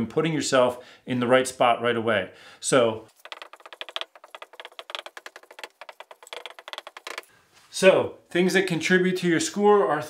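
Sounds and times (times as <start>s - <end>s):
marker squeaking on whiteboard: 3.1s - 7.3s.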